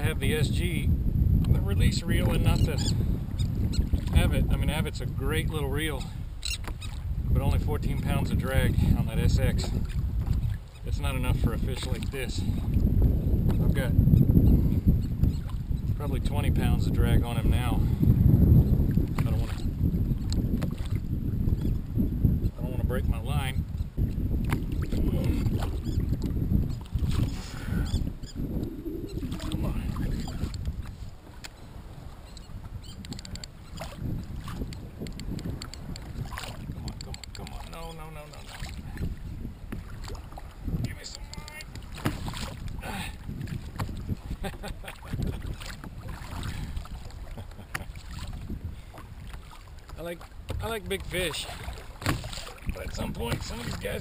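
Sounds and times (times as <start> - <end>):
water lapping against hull: 0.0 - 54.0
wind buffeting microphone: 0.0 - 54.0.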